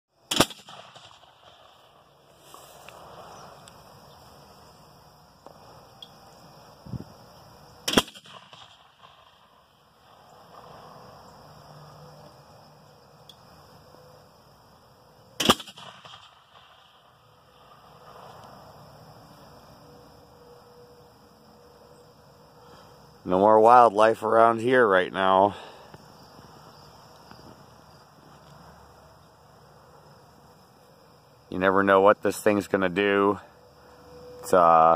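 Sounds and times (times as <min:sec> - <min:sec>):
bird-scare cannon bangs: 0:00.3 - 0:01.8.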